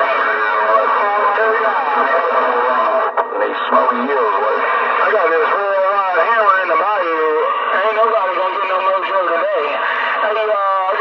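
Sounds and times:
voices over radio: 0.0s - 11.0s.

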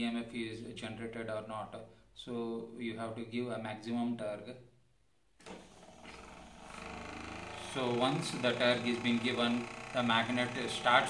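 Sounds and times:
small motor whirring hum: 5.4s - 11.0s.

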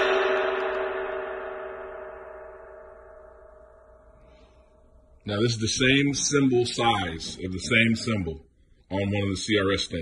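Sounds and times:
cymbal ringing after stick strike: 0.0s - 5.2s.

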